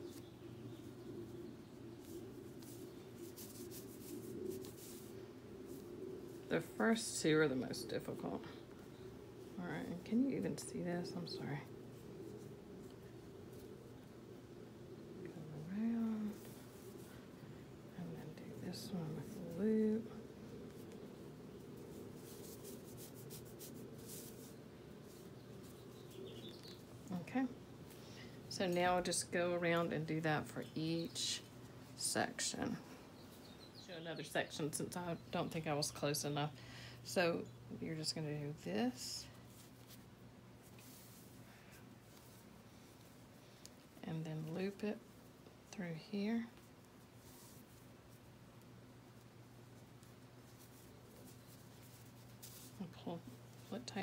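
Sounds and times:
low hum: 0.0 - 35.5
rope rustling against itself: 0.0 - 36.4, 37.1 - 54.0.

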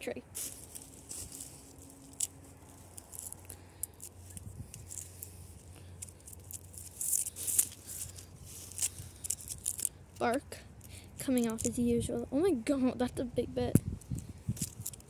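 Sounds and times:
fingers scratching tree bark: 0.4 - 11.9, 13.9 - 15.0.

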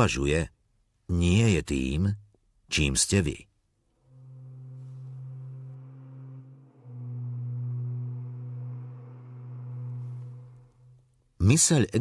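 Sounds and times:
ambient drone music: 3.9 - 11.2.

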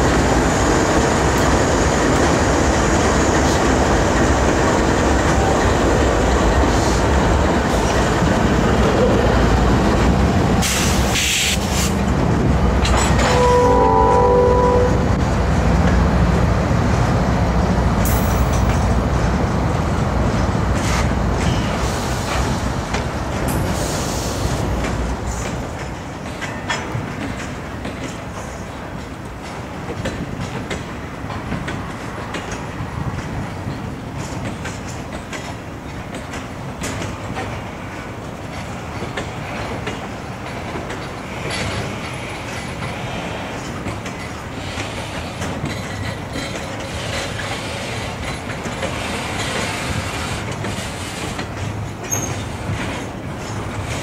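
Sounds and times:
train wheels rumbling on rail: 0.0 - 54.0
clicking over rail joints: 3.3 - 14.3, 22.3 - 54.0
wheel squeal: 52.1 - 52.5.

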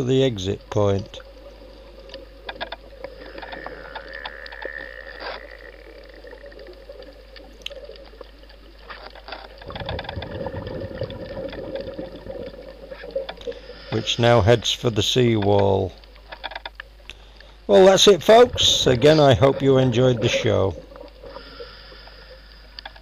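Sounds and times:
steady underwater hum: 0.0 - 23.0
diver's exhaled bubbles rushing: 9.6 - 13.2.

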